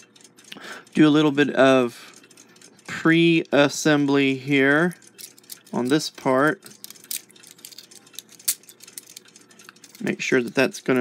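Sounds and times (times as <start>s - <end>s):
metallic clicks of clock parts: 0.0s - 11.0s.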